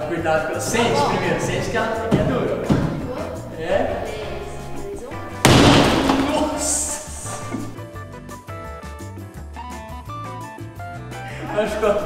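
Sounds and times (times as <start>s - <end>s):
background music: 0.0s - 12.0s
fist punching drywall thump: 5.4s - 6.6s.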